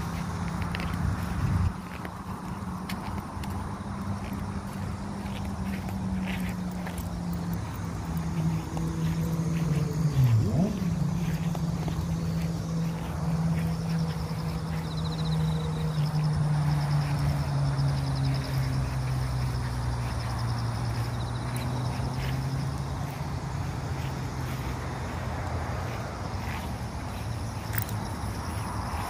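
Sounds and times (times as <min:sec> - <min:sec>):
low engine drone: 0:00.0 - 0:29.0.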